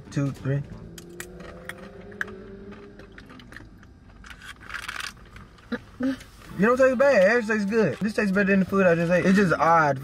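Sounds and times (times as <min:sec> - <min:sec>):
crunchy apple crisps being chewed: 0:01.0 - 0:05.5.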